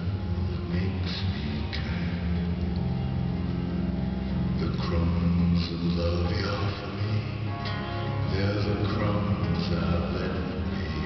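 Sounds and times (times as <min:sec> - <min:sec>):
acoustic guitar: 0:00.0 - 0:11.0
low bass notes: 0:00.0 - 0:11.0.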